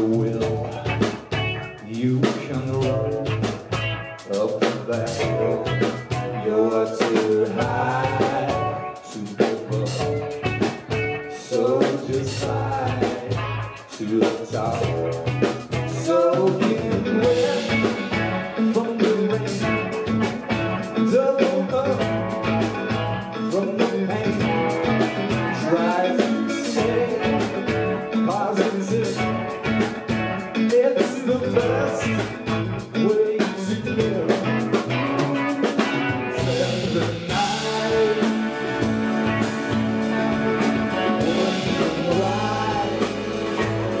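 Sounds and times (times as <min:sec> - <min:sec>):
bending lead guitar melody: 0:00.0 - 0:44.0
live rock band playing: 0:00.0 - 0:44.0.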